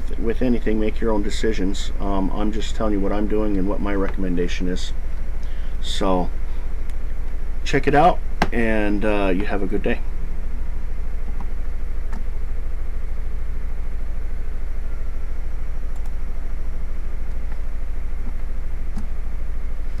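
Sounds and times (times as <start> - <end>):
loud low hum: 0.0 - 20.0.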